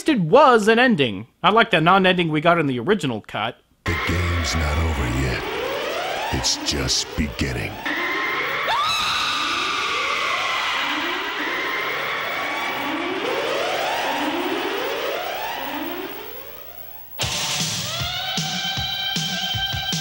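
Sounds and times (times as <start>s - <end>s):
held synthesizer tones: 3.9s - 16.7s
siren-like rising sweep: 3.9s - 17.0s.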